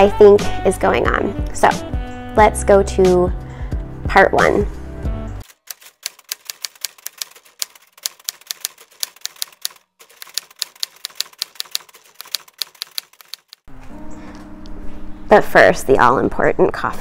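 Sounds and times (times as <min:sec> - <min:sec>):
typewriter keys clacking: 0:05.4 - 0:13.7.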